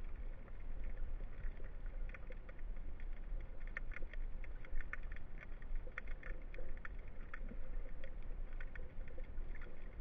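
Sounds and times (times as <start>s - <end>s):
faint steady hum: 0.0s - 10.0s
small clicks and crackles: 0.0s - 10.0s
underwater rumble of moving water: 0.0s - 10.0s.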